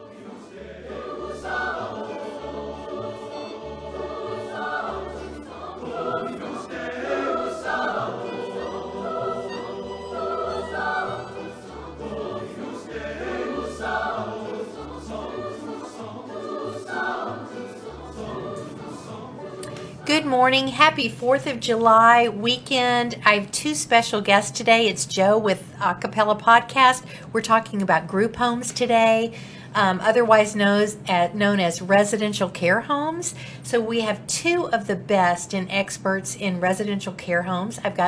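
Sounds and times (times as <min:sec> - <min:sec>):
choir singing in harmony: 0:00.0 - 0:20.7.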